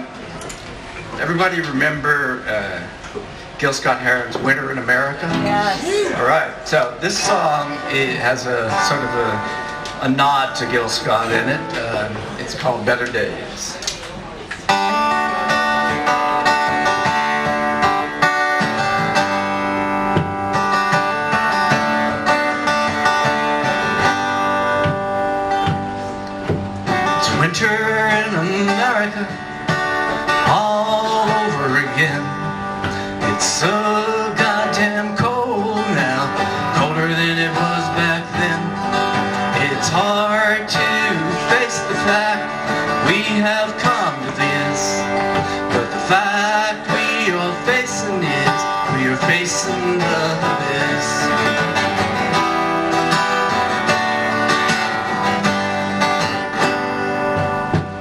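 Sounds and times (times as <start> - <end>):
acoustic guitars playing: 0.0 - 58.0
man singing: 4.4 - 12.2, 27.1 - 52.0.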